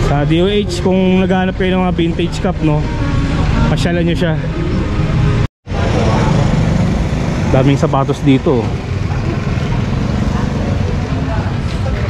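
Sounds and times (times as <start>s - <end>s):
traffic and motor noise: 0.0s - 12.0s.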